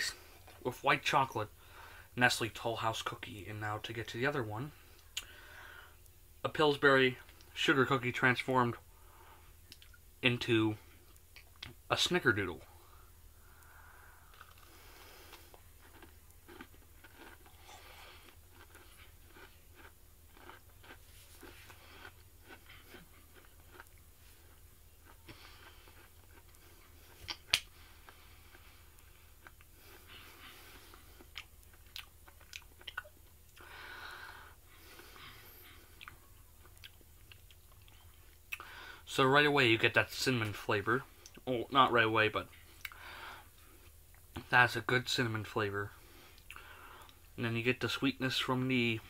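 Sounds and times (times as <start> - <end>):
person chewing crunchy cookie: 13.5 - 38.8.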